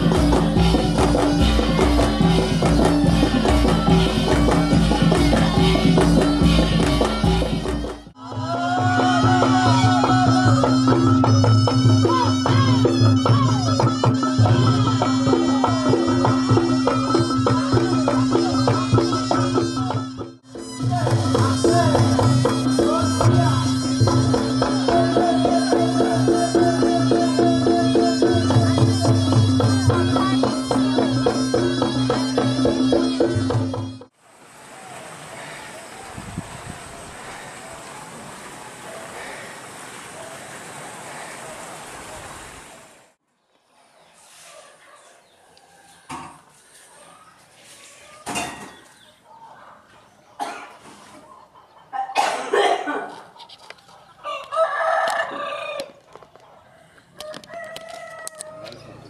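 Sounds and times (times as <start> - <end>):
traditional music with drums: 0.0 - 34.1
rooster crowing: 53.6 - 59.0.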